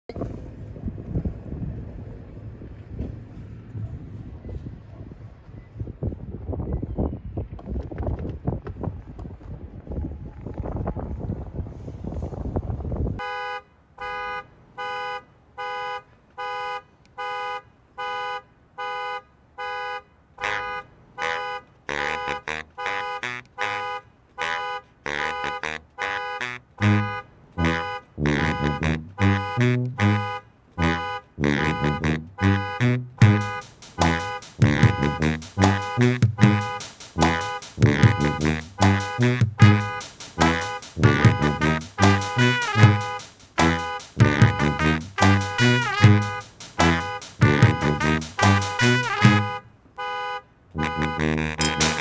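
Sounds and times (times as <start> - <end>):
wind rumbling on microphone: 0.1 - 13.2
car alarm horn honking: 13.2 - 52.0
low brass notes: 20.4 - 50.1, 50.7 - 52.0.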